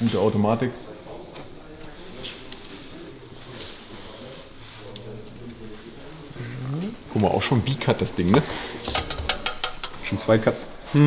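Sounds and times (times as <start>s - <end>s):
people talking quietly: 0.0s - 11.0s.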